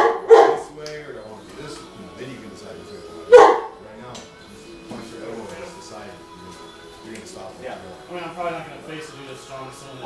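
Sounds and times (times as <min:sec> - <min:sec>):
dog barking: 0:00.0 - 0:00.7, 0:03.3 - 0:03.8
music: 0:00.0 - 0:10.0.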